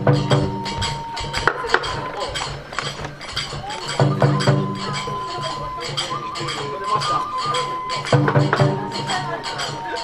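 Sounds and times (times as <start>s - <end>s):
wooden jaws clacking: 0.0s - 10.0s.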